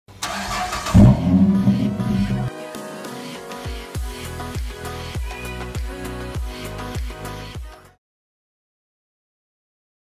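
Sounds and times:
car engine starting: 0.1 - 2.5.

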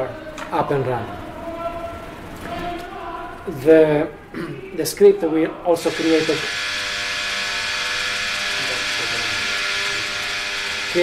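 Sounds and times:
buzzing hum with hiss: 0.0 - 11.0.

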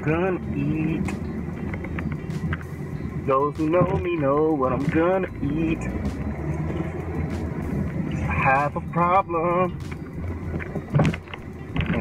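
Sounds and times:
car engine hum inside cabin: 0.0 - 12.0.

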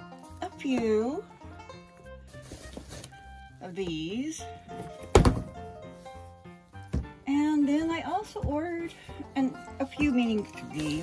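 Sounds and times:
soft background music: 0.0 - 11.0
plastic ball thunking on counter: 5.1 - 5.5.

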